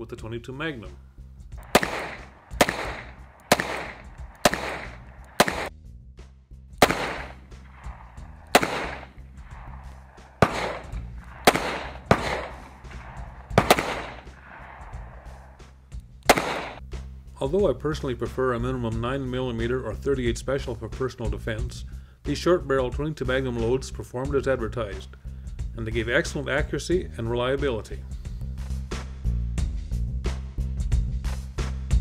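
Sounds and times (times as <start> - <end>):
revolver shots with echo: 1.6 - 5.7, 6.8 - 15.6, 16.3 - 16.8.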